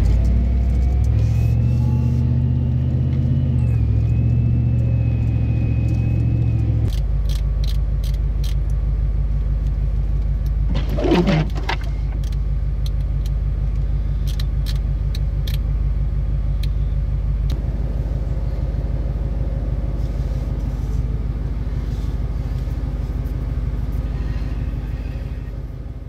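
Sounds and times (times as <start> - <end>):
car rumble inside cab: 0.0 - 26.0
sharp clicks: 12.1 - 15.6.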